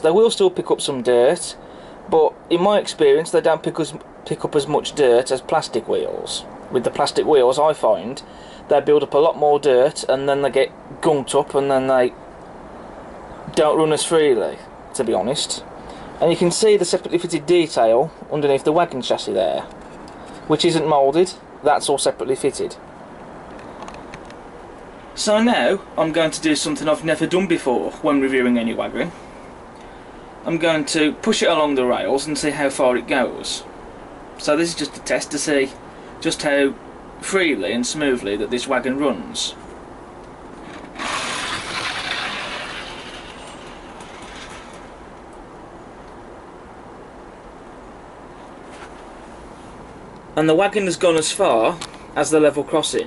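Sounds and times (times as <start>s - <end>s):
model train wagon rolling on track: 40.6s - 45.1s.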